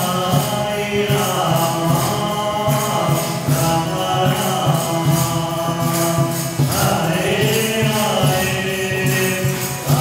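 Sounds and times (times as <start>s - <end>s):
musical accompaniment: 0.0s - 10.0s
steady percussive beat: 0.0s - 10.0s.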